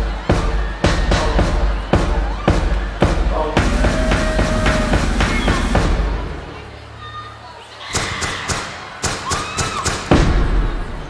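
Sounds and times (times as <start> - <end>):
sharp percussive hits: 0.3 - 6.4.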